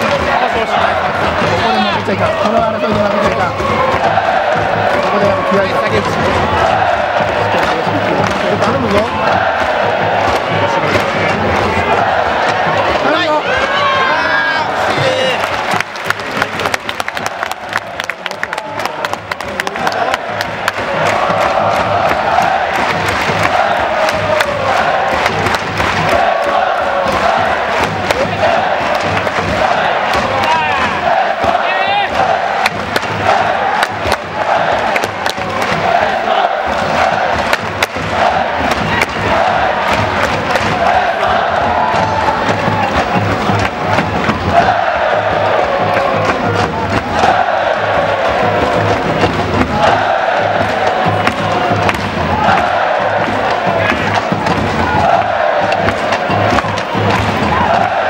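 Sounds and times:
crowd chanting in unison: 0.0 - 58.0
drum beating: 0.0 - 58.0.

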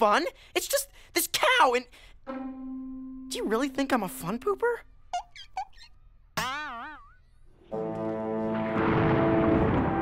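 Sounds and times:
held music chord: 2.3 - 4.5
cartoon boing: 6.4 - 7.2.

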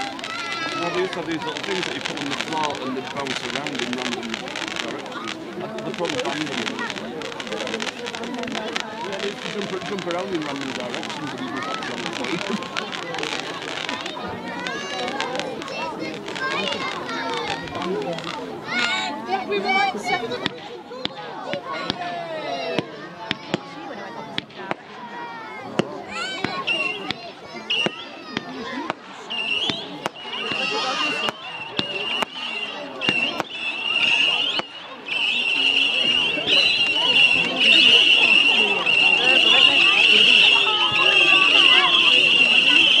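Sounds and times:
fireworks popping: 0.0 - 19.1, 19.9 - 22.1, 22.8 - 25.0, 25.7 - 43.0
crowd chattering and squealing: 0.0 - 43.0.

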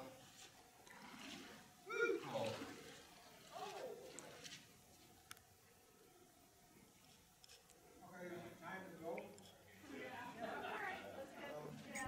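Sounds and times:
feet wading through muddy water: 0.9 - 4.7.

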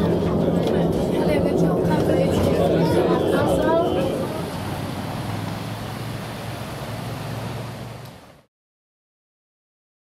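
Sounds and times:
car engine humming: 0.0 - 8.5
street noise: 0.0 - 8.5.

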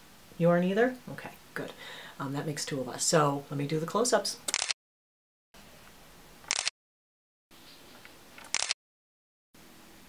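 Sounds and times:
camera shutter click: 4.5 - 4.8, 6.5 - 6.7, 8.4 - 8.8.

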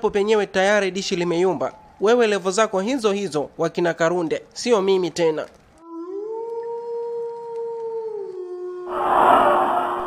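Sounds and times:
howl-like wail: 5.8 - 10.0
hissing whoosh: 8.9 - 10.0.

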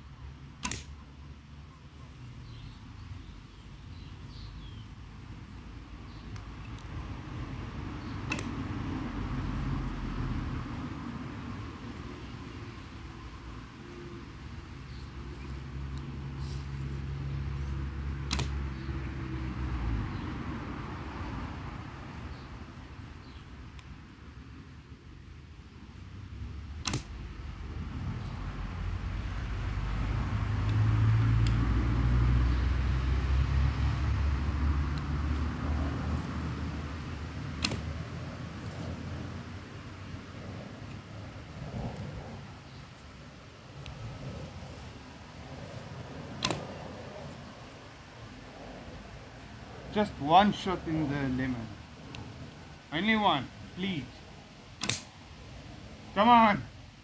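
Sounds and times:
road traffic passing: 0.0 - 57.0
bow shot snaps: 0.6 - 1.0, 8.2 - 8.6, 18.2 - 18.7, 26.8 - 27.2, 37.6 - 38.0, 46.4 - 46.8, 54.8 - 55.2.

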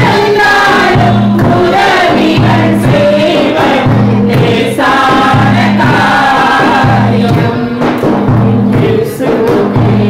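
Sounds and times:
women singing worship song: 0.0 - 10.0.

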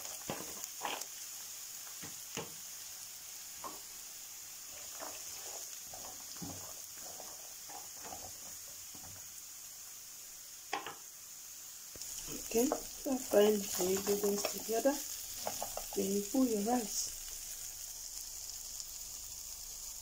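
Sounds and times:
vegetables sizzling in oil: 0.0 - 20.0.

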